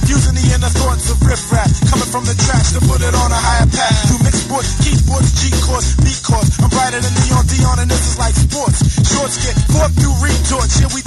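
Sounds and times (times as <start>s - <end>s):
deep heavy bass line: 0.0s - 11.0s
rapping over a beat: 0.0s - 11.0s.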